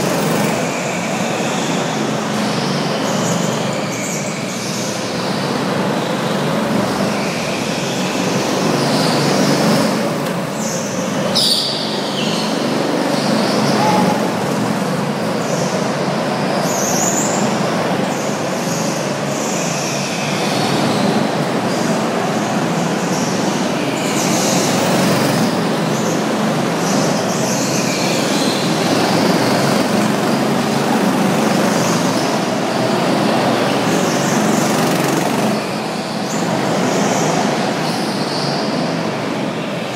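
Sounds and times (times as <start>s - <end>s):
go-karts running: 0.0s - 39.9s.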